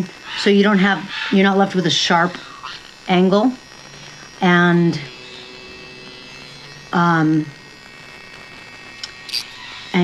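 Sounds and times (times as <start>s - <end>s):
nail grinder motor hum: 0.0s - 10.0s.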